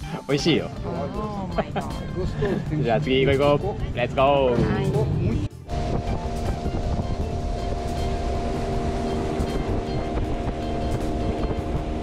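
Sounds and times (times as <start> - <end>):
outboard motor running: 0.0 - 12.0
wind rumble on microphone: 1.9 - 12.0.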